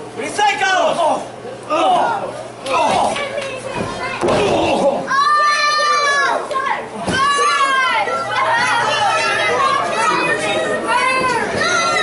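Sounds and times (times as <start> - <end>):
children yelling: 3.7 - 12.0.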